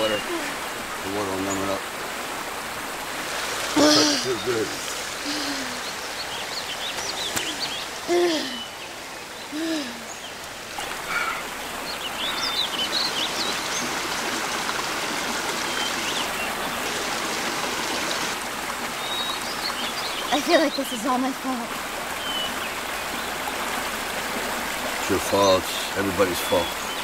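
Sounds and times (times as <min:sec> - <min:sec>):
birds chirping: 0:00.0 - 0:27.0
stream running over rocks: 0:00.0 - 0:27.0.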